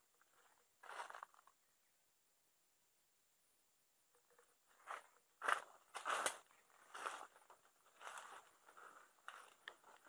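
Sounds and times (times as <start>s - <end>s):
footsteps crunching on dry leaves: 0.3s - 1.4s, 4.7s - 10.0s
brushing through undergrowth: 4.8s - 10.0s.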